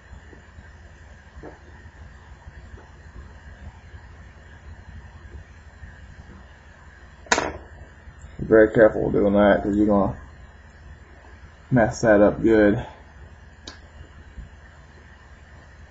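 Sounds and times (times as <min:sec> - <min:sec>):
low steady hum: 0:00.0 - 0:15.9.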